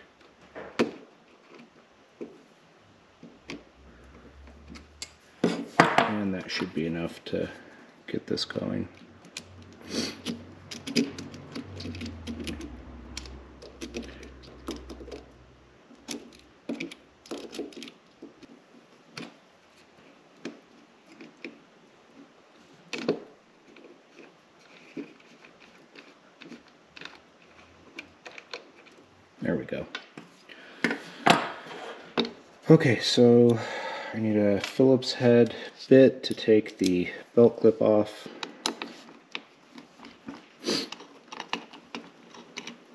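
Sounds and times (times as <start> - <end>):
low hum: 3.5 - 5.4, 8.9 - 16.6.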